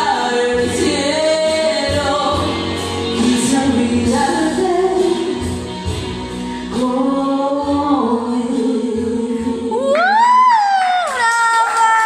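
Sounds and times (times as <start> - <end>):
woman singing into a microphone: 0.0 - 5.8, 6.6 - 12.0
karaoke backing music: 0.0 - 12.0.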